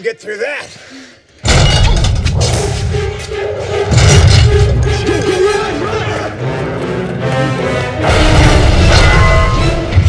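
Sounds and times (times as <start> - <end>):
tense orchestral music: 1.5 - 10.0.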